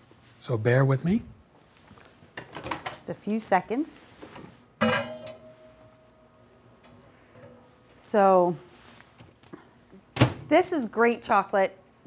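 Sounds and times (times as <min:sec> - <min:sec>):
metal kitchenware strike ringing: 0:04.8 - 0:05.9.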